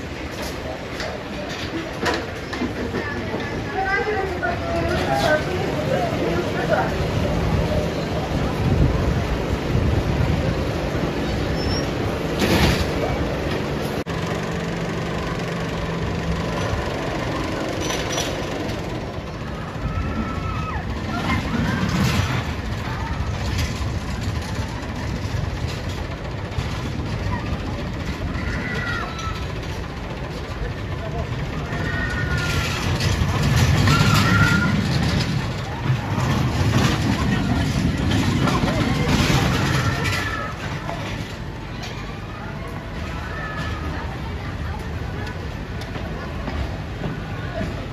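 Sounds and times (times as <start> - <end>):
people's voices: 0.0 - 47.9
roller coaster rumbling on track: 0.0 - 47.9.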